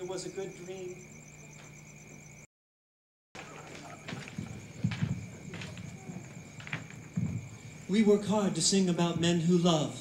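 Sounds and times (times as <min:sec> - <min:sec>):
footsteps on stage floor: 0:03.4 - 0:08.1.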